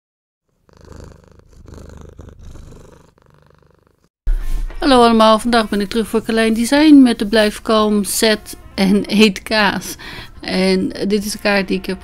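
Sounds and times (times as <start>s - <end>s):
cat purring: 0.5s - 4.1s.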